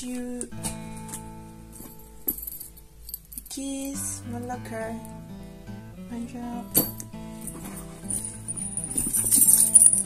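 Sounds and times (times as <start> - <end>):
background music: 0.8 - 10.0
keys jingling: 1.8 - 3.6, 6.8 - 10.0.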